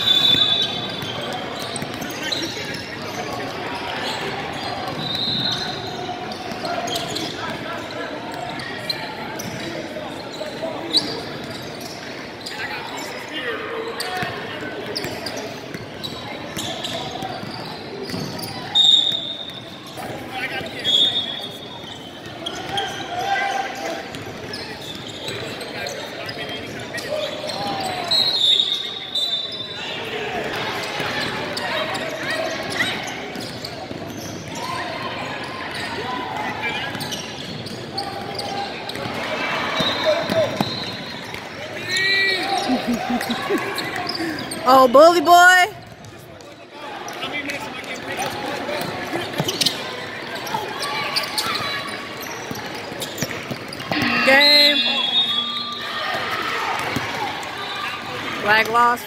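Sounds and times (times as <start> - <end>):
shoe squeaks: 0.0 - 14.3, 14.9 - 29.9, 30.9 - 44.8, 48.0 - 56.6
shouts and chatter: 0.0 - 45.9, 46.6 - 59.0.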